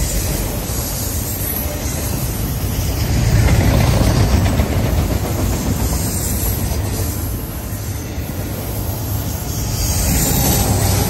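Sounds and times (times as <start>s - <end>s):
freight cars rolling on rails: 0.0s - 11.0s.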